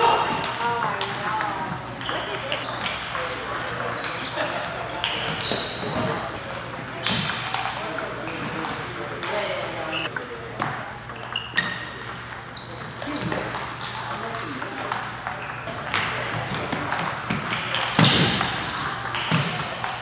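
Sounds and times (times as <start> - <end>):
table tennis at neighbouring tables: 0.0 - 20.0.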